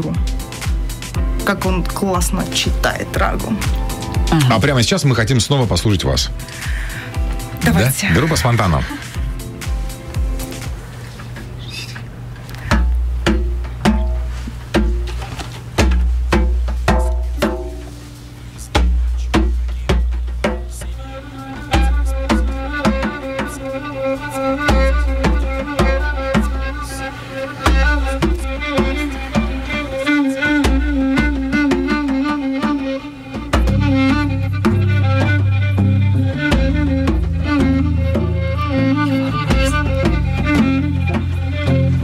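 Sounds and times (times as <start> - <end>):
rhythmic guitar: 0.0 - 42.0
djembe hand drum: 12.6 - 23.8, 24.6 - 42.0
bowed violin long notes: 20.8 - 42.0.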